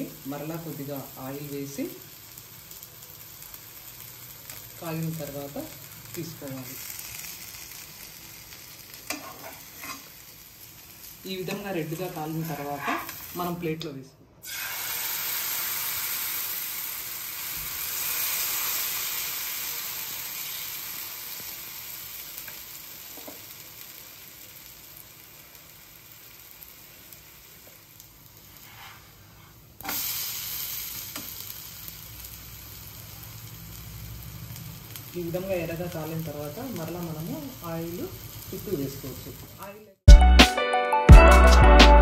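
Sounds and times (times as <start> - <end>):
batter sizzling in oil: 0.0 - 13.8, 14.4 - 40.0.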